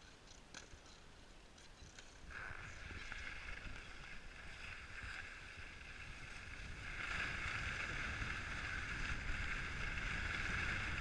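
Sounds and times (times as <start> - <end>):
wind rumbling on microphone: 0.0 - 11.0
skis sliding on snow: 1.7 - 11.0.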